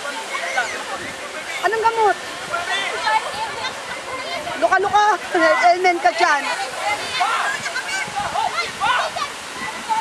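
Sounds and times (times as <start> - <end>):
surf breaking on beach: 0.0 - 10.0
women and children calling out: 1.6 - 10.0.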